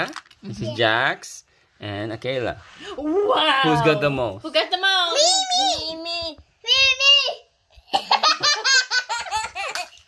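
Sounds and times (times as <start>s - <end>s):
child laughing: 7.9s - 10.0s.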